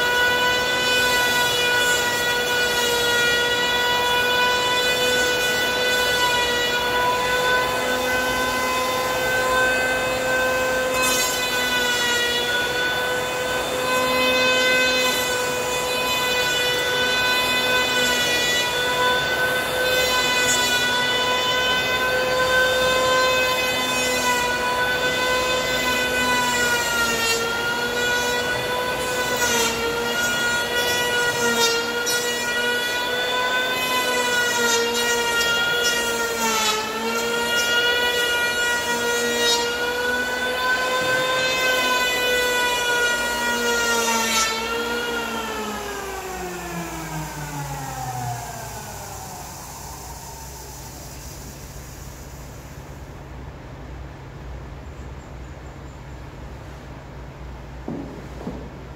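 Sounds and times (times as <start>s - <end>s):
electric hand planer whining: 0.0s - 52.0s.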